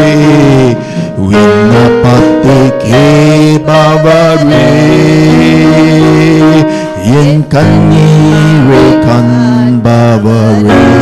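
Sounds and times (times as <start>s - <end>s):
instrumental accompaniment: 0.0s - 11.0s
worship song singing: 0.0s - 11.0s.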